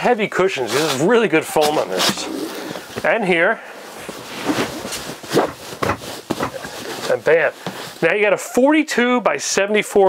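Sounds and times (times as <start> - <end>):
fabric rubbing and shuffling: 0.0 - 8.5
cushions thumping: 1.6 - 3.2, 4.0 - 8.0.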